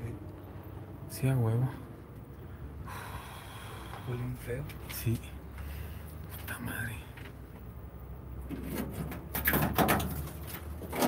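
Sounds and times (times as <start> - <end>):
person breathing out hard: 2.8 - 4.1.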